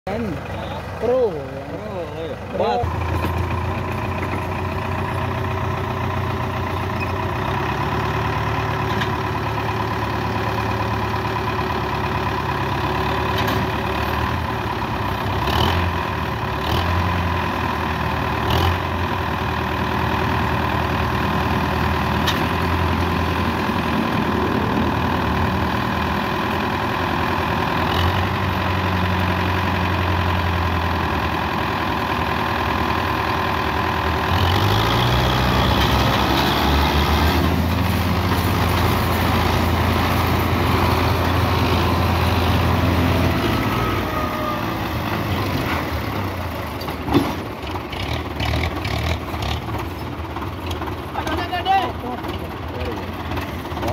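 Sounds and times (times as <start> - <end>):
tractor engine revving under load: 0.1 - 51.2
diesel tractor engines running: 0.1 - 53.9.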